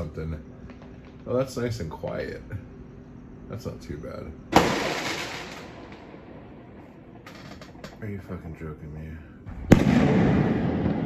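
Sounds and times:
low background noise: 0:00.0 - 0:11.0
firework bang tail: 0:09.5 - 0:11.0.

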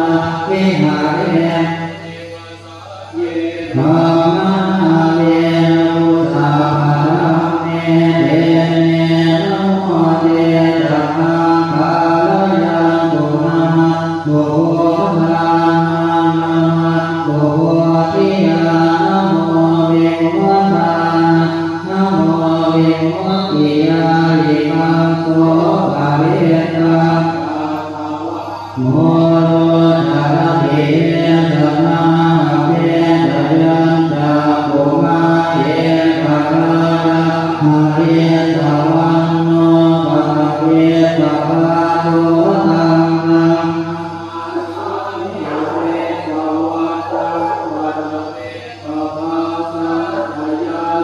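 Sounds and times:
monks chanting in unison: 0:00.0 - 0:51.0.

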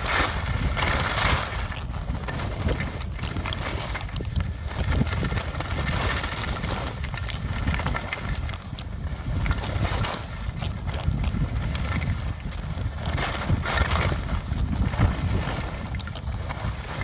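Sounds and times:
skis scraping over snow: 0:00.0 - 0:17.0
wind buffeting microphone: 0:00.0 - 0:17.0.

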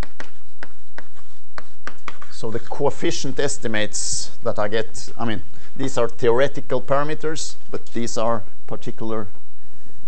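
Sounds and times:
chalk on chalkboard: 0:00.0 - 0:03.2.

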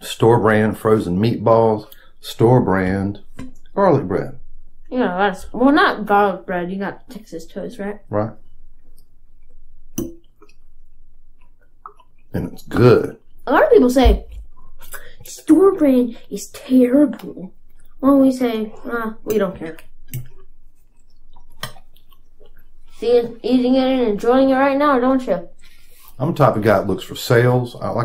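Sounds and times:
faint eating clicks: 0:08.9 - 0:12.7, 0:19.2 - 0:22.8
chewing and biting food: 0:19.6 - 0:22.8
toast crunching: 0:19.6 - 0:22.8.

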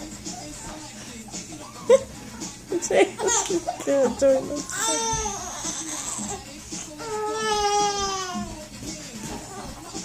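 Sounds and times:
child wailing cry: 0:04.7 - 0:06.4, 0:07.0 - 0:08.6.

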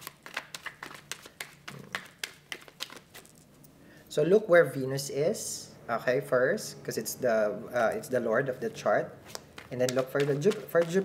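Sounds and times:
cards being shuffled: 0:00.0 - 0:03.5, 0:09.2 - 0:11.0.

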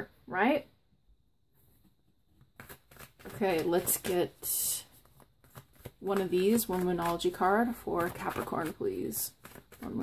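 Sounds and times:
tarot cards clicking and rustling: 0:02.4 - 0:10.0.

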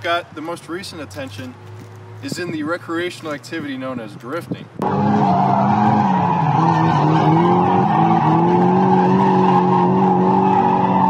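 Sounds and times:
car engine at high revs: 0:04.8 - 0:11.0
tyre squeal: 0:05.0 - 0:11.0.

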